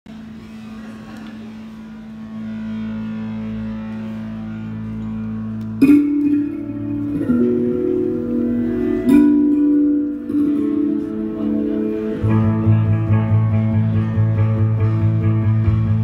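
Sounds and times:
live instrumental rock: 5.6s - 16.0s.

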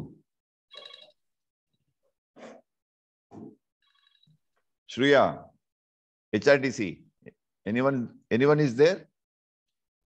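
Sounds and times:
electronic ringing tone: 0.7s - 1.2s.

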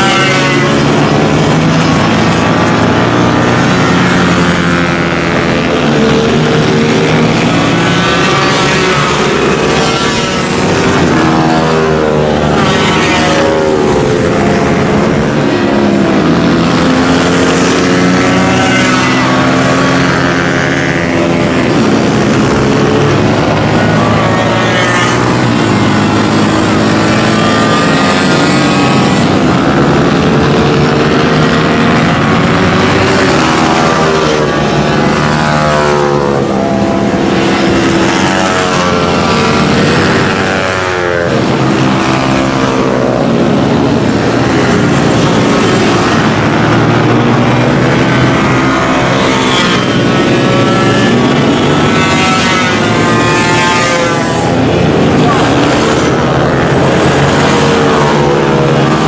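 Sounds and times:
minibike racing engines: 0.0s - 59.0s.

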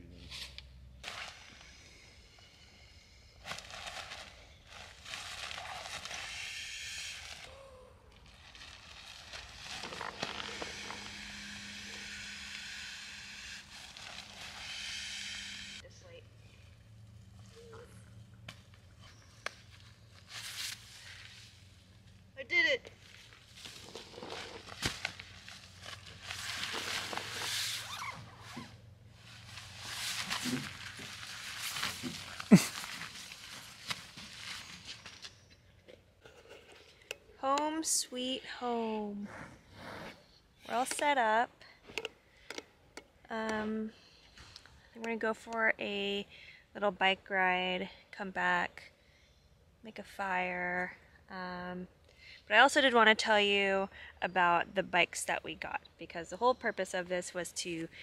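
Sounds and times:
nylon rustling: 3.5s - 6.5s, 8.1s - 14.7s, 23.0s - 35.5s
air hissing into a sleeping pad: 9.6s - 15.8s.

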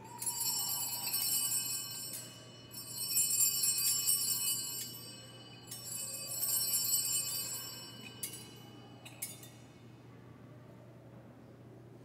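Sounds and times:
small hand bells ringing: 0.0s - 9.8s.

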